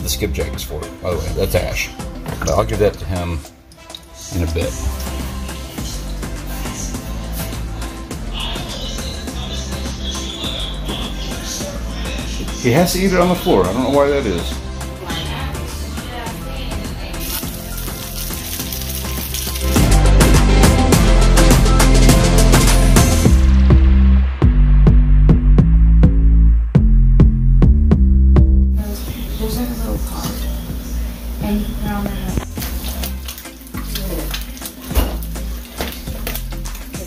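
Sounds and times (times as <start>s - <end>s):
background music with heavy beat: 0.0s - 37.0s
person singing: 4.1s - 12.7s
steady bass line: 4.5s - 34.3s
fish sizzling in hot oil: 17.1s - 19.8s, 32.4s - 37.0s.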